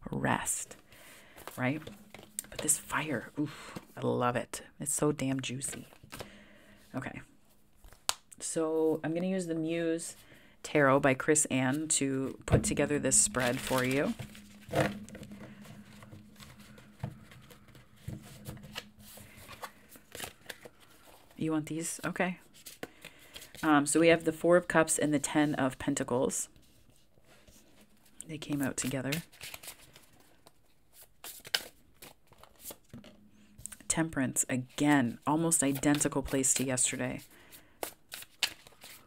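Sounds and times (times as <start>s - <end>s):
faint steady hum: 0.0s - 24.5s, 32.6s - 35.9s
cards being shuffled: 28.5s - 32.9s, 37.8s - 39.0s.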